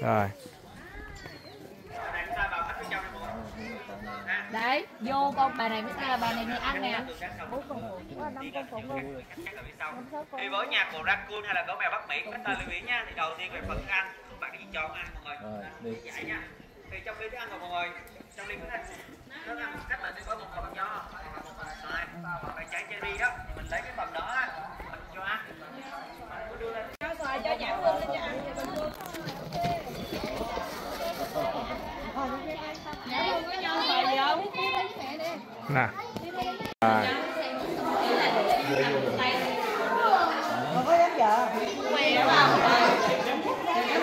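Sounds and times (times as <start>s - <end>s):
crowd chatter: 0.0s - 44.0s.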